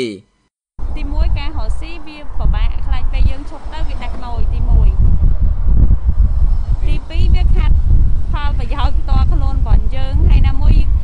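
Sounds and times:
person speaking: 0.0s - 0.2s
loud low rumble: 0.8s - 11.0s.

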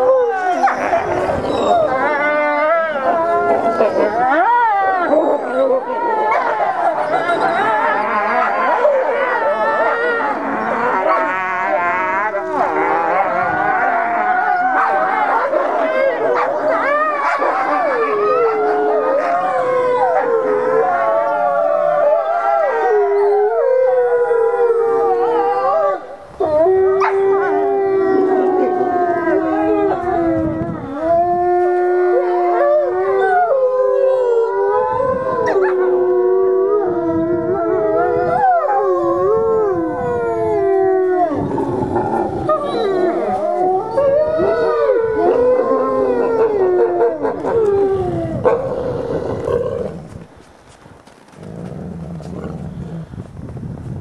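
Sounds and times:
wolves howling: 0.0s - 50.2s.

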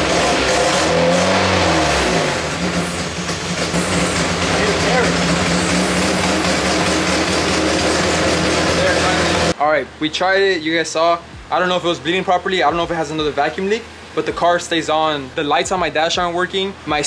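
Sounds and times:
car engine revving and idling: 0.0s - 9.6s.

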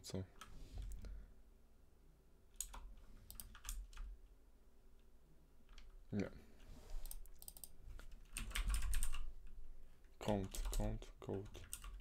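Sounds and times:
typing on computer keyboard: 2.6s - 4.1s, 7.1s - 9.3s, 10.3s - 12.0s.

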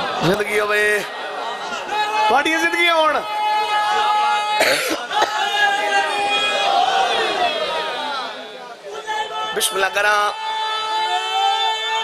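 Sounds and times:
man coughing into microphone: 4.6s - 5.4s.

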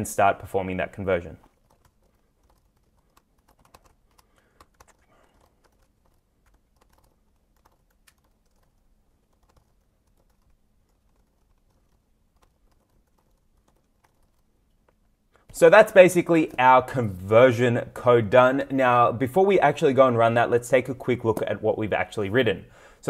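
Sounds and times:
faint keyboard typing: 0.8s - 16.8s.

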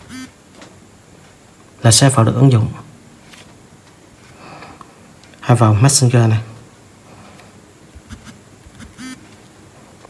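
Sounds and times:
short pitched tone: 8.1s - 9.2s.

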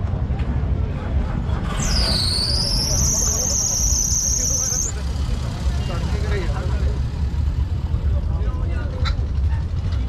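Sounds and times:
faint crowd voices: 0.0s - 10.0s
thin high whine: 1.8s - 5.0s.

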